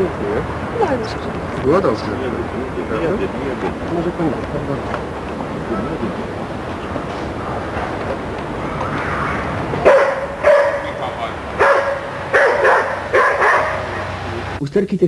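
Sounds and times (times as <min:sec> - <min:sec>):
dog barking: 0:09.8 - 0:14.1.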